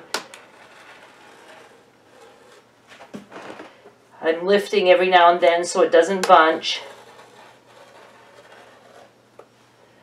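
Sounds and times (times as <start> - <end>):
rotary cutter scratching through fabric: 0.4 - 2.7, 6.6 - 9.2.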